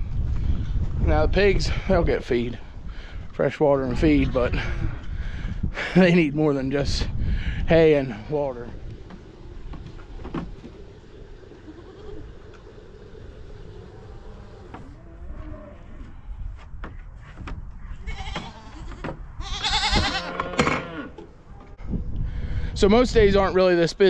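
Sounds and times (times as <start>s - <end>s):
low rumble: 4.6s - 16.4s
goats bleating: 11.5s - 12.7s, 18.0s - 21.1s.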